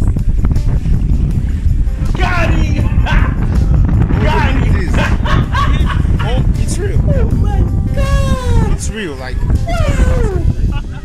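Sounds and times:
surf rumble: 0.0 - 11.0
wind: 0.0 - 11.0
woman crying out: 8.0 - 8.8, 9.7 - 10.5.

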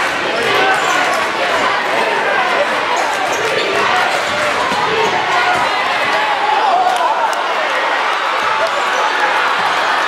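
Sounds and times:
crowd chatter and shouting: 0.0 - 10.0.

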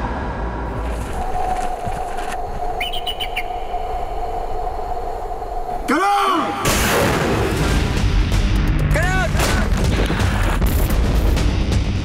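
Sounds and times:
high chirping bird call: 2.7 - 4.0.

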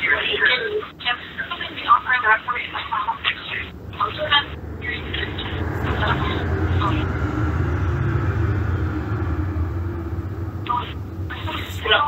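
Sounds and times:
muffled vehicle rumble: 0.0 - 12.0.

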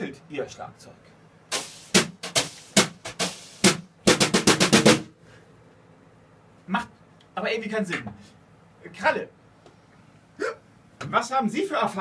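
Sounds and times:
wire brushes striking a drum: 1.5 - 5.1.

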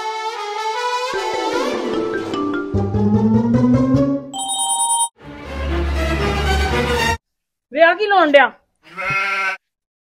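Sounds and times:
short bleat: 8.8 - 9.7.

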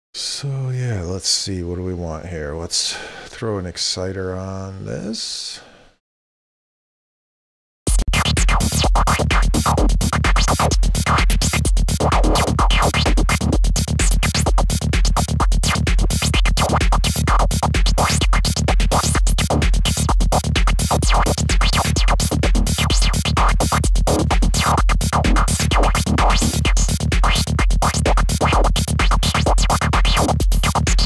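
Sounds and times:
psytrance loop: 7.9 - 31.0
steady kick drum: 7.9 - 31.0.

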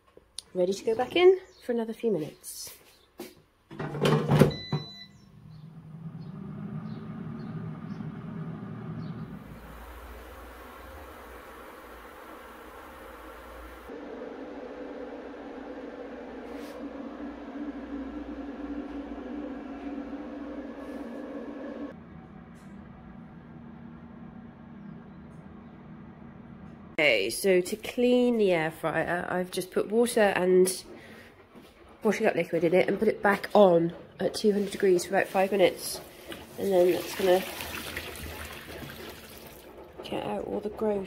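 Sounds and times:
air fryer fan humming: 3.7 - 27.0, 35.2 - 41.0.

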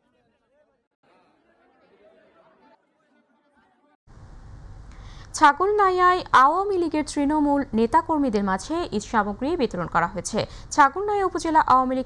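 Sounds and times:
faint crowd chatter: 0.0 - 3.9.

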